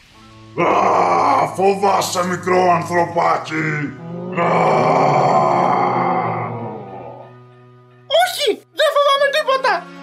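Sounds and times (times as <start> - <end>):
low musical drone: 0.2 - 8.1
dragon roar: 0.6 - 2.1, 3.7 - 7.4.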